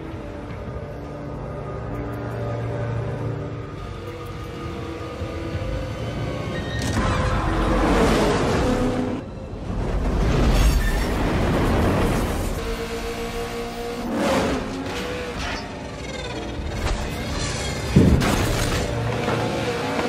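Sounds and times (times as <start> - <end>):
dramatic action film music: 0.0 - 20.0.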